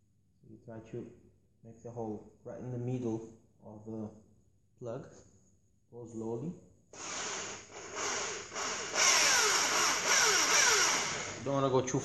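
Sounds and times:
electric drill boring: 7.0s - 11.5s.

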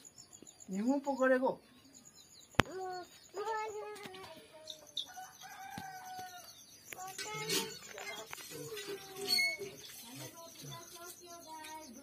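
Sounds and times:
rooster crowing: 5.0s - 6.6s.

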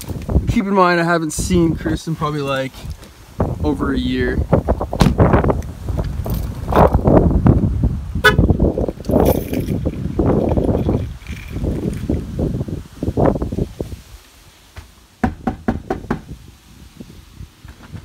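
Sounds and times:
walking and handling noise: 0.0s - 0.7s, 2.0s - 3.5s, 4.7s - 7.0s, 8.8s - 12.3s
car horn toot: 8.2s - 8.5s
knuckles knocking on door: 15.2s - 16.3s.

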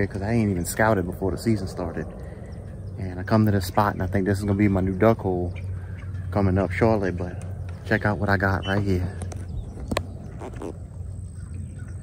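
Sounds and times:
low steady rumble: 0.0s - 12.0s
marsh bird calls: 0.0s - 12.0s.

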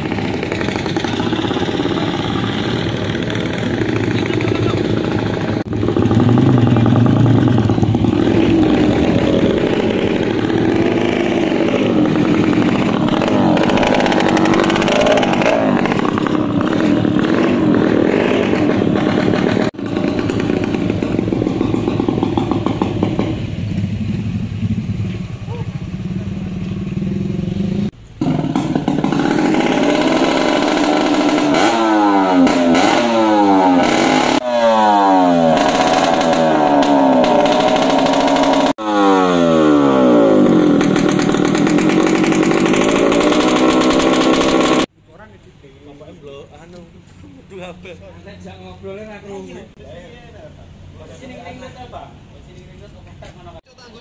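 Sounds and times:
motorcycle engine revving: 0.0s - 44.9s.

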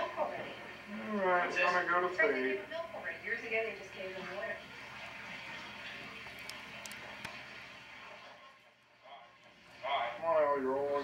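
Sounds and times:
small clicks: 6.3s - 7.4s.

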